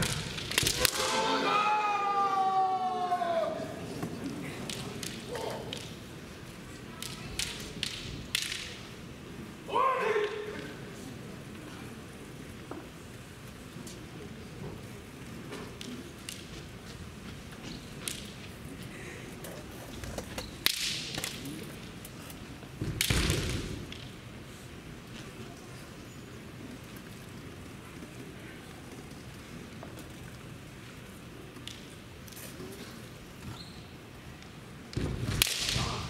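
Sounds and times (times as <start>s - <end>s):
bamboo swords clacking: 0.0s - 1.2s, 4.6s - 6.1s, 6.9s - 8.9s, 18.0s - 18.5s, 20.4s - 22.2s, 34.9s - 36.0s
sharp crack: 0.0s - 1.3s, 35.0s - 36.0s
thud: 35.0s - 36.0s.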